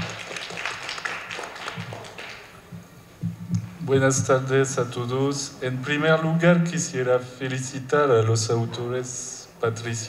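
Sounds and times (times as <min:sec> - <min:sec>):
audience clapping: 0:00.0 - 0:02.7.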